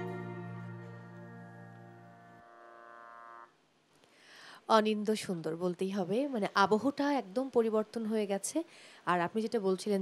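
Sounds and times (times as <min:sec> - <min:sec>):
electronic keyboard chord: 0:00.0 - 0:02.9.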